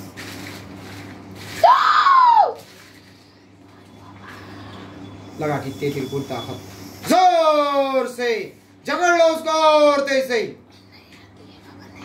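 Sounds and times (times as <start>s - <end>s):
woman screaming: 1.6s - 2.6s.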